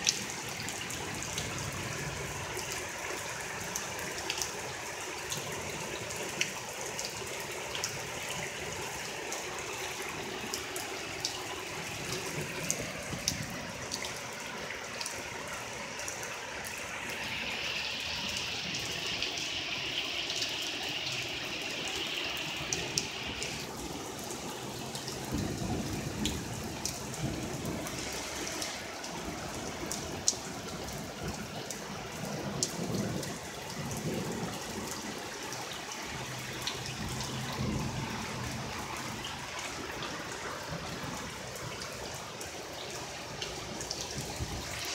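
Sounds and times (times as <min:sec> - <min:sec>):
rain falling on street and cars: 0:00.0 - 0:44.9.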